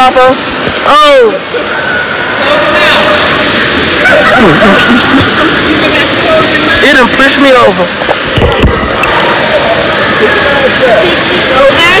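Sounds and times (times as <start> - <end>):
pool water splashing: 0.0 - 12.0
faint voices: 0.8 - 12.0.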